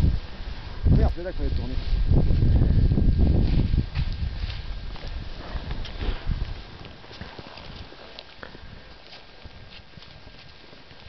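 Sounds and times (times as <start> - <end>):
low microphone rumble: 0.0 - 11.0
skis crunching in snow: 3.2 - 11.0.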